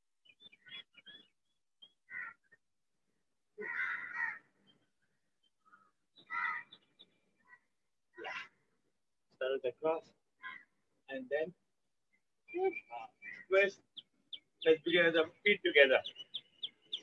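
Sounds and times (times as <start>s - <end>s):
crows cawing: 2.1s - 2.6s, 3.6s - 4.6s, 5.6s - 8.6s, 10.4s - 10.9s.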